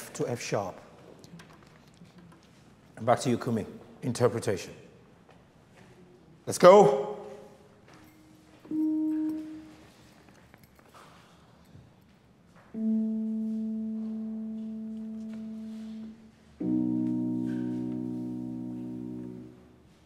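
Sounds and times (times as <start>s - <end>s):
electronic keyboard held notes: 8.3s - 10.3s, 12.7s - 20.0s.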